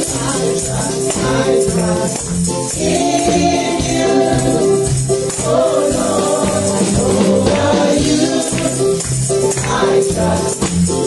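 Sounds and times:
accompanying music: 0:00.0 - 0:11.0
tambourines jingling: 0:00.0 - 0:11.0
women singing into microphones: 0:00.0 - 0:11.0.

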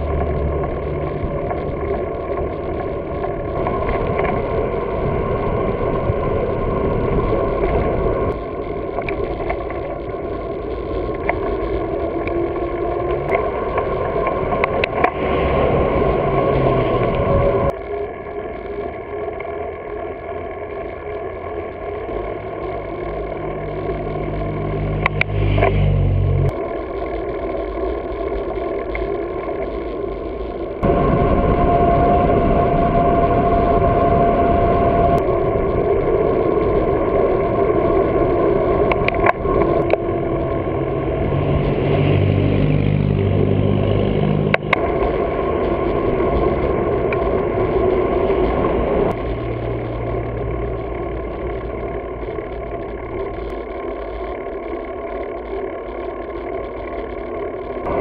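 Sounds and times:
passing car engines humming: 0:00.0 - 0:01.6, 0:40.4 - 0:44.7
bicycle tyre rush: 0:00.0 - 0:19.2
wind: 0:00.0 - 0:58.0.

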